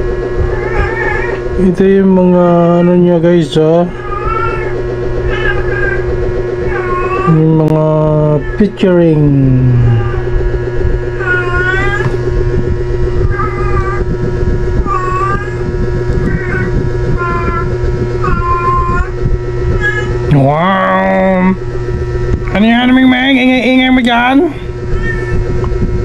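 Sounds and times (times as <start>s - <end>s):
steady low hum: 0.0s - 26.0s
cat meowing: 0.6s - 1.4s, 4.0s - 6.0s, 11.2s - 12.2s, 24.9s - 25.5s.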